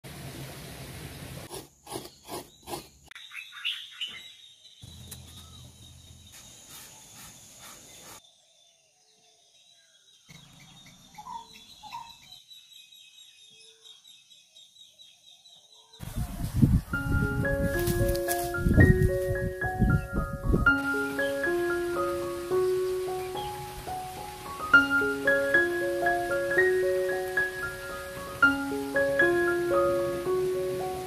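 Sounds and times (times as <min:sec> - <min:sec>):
birds chirping: 0:01.9 - 0:31.0.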